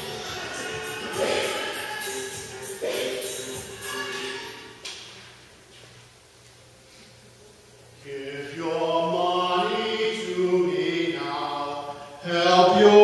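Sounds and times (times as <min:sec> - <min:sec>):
man singing long held notes: 0:00.0 - 0:04.0, 0:08.0 - 0:13.0.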